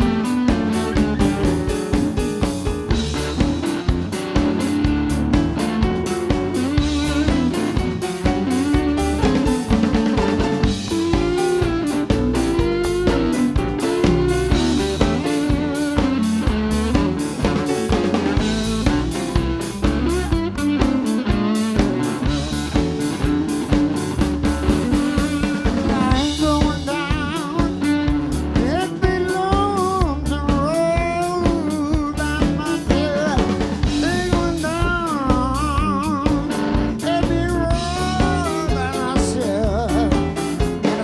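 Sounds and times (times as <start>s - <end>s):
blues band playing: 0.0s - 41.0s
electric slide guitar: 0.0s - 41.0s.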